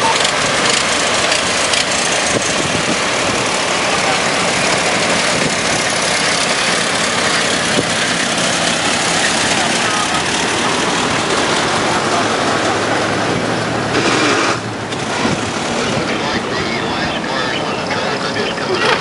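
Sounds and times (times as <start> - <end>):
car engines rolling past: 0.0 - 19.0
voices in background: 9.1 - 13.6, 15.2 - 19.0.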